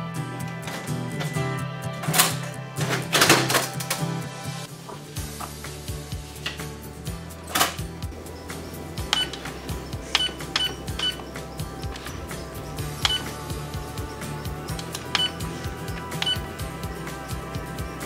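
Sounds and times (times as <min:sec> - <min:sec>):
background music: 0:00.0 - 0:18.0
printer key-press beeps: 0:09.1 - 0:09.4, 0:10.1 - 0:11.2, 0:13.0 - 0:13.4, 0:14.8 - 0:15.4, 0:16.2 - 0:16.5.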